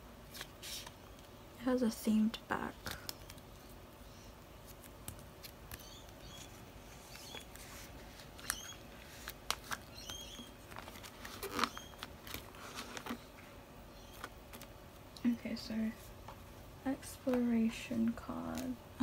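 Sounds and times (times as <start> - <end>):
plastic sleeves crinkling: 4.6 - 13.4.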